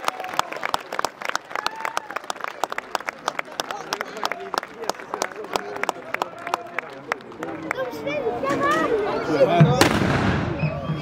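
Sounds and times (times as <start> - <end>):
musket shot: 9.8 - 10.6.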